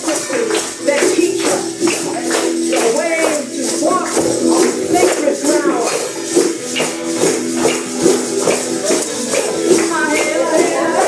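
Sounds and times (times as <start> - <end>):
acoustic guitar strumming: 0.0 - 11.0
maraca shaking: 0.0 - 11.0.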